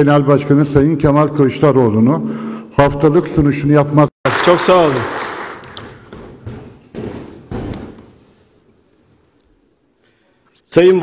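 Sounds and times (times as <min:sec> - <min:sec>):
dull thuds echoing in hall: 0:04.4 - 0:08.7.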